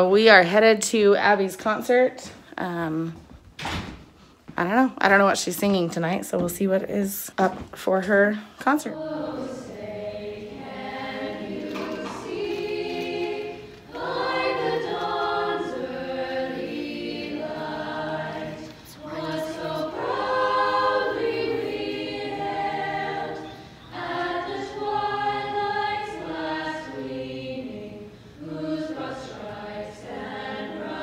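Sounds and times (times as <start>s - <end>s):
choir singing unaccompanied: 8.8s - 31.0s.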